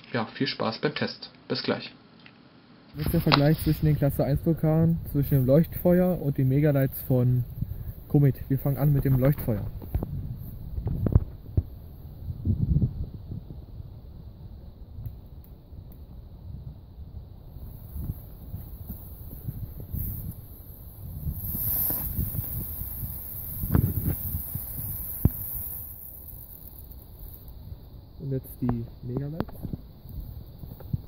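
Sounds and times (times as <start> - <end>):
low wind rumble on microphone: 3.0 - 31.0
firework fountain hissing: 17.5 - 28.0.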